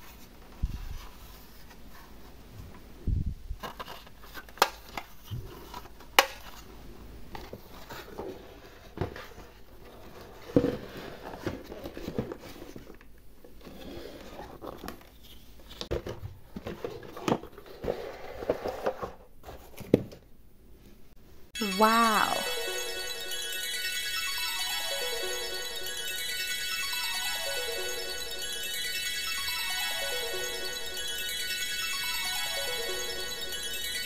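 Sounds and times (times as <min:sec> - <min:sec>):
light rustling and crinkling: 0:00.0 - 0:02.8.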